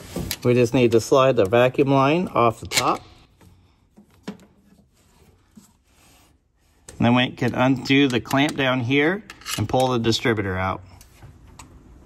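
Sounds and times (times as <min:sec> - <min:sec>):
rubber hose rubbing and scraping: 0:02.3 - 0:07.3.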